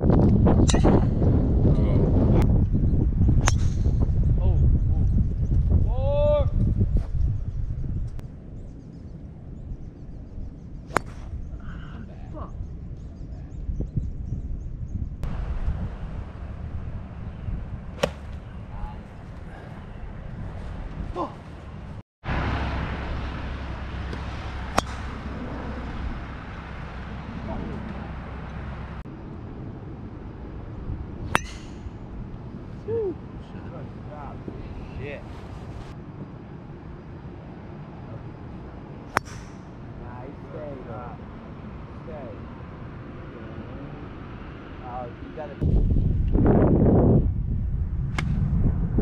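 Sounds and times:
low wind rumble on microphone: 0:00.0 - 0:49.0
golf club striking ball: 0:03.4 - 0:03.9, 0:10.9 - 0:11.3, 0:18.0 - 0:18.5, 0:24.1 - 0:25.3, 0:31.3 - 0:32.1, 0:39.1 - 0:39.8.

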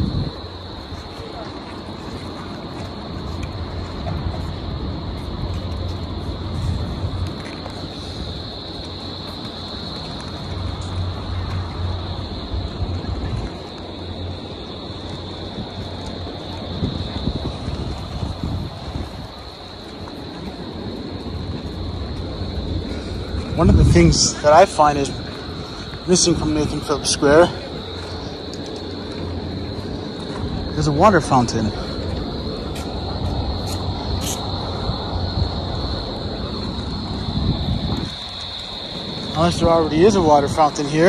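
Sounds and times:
low rumbling noise: 0:00.0 - 0:41.0
high hiss: 0:30.0 - 0:35.2.

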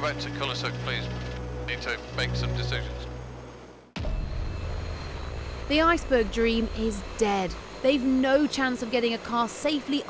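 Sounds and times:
helicopter rotor rumble: 0:00.0 - 0:10.0.

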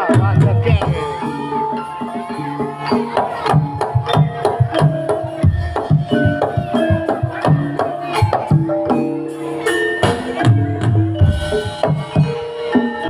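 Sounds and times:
ringing metal percussion: 0:00.0 - 0:13.0.

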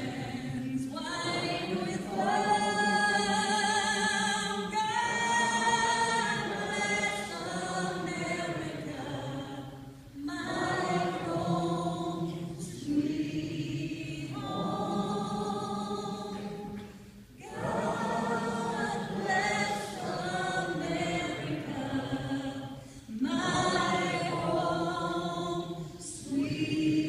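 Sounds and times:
voices singing unaccompanied: 0:00.0 - 0:27.0.

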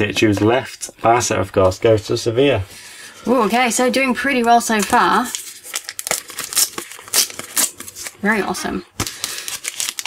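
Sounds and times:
wrapper crinkling and tearing: 0:04.8 - 0:08.2, 0:09.0 - 0:10.0.

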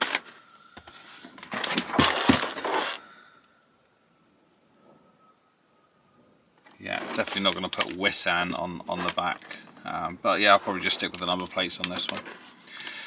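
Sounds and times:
cardboard box scraping and rustling: 0:01.0 - 0:03.0.

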